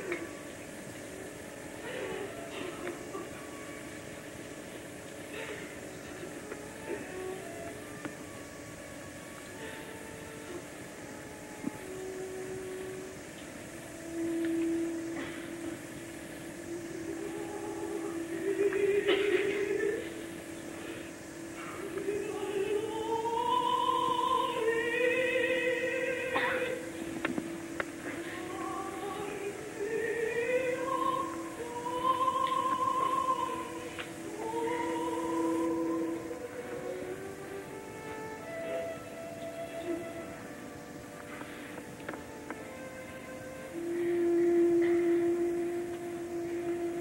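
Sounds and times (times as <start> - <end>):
orchestra playing soft chords: 0.0 - 47.0
recording hiss: 0.0 - 47.0
opera singer with vibrato: 5.6 - 47.0
faint clicks: 8.9 - 24.8, 27.0 - 37.5, 38.4 - 47.0.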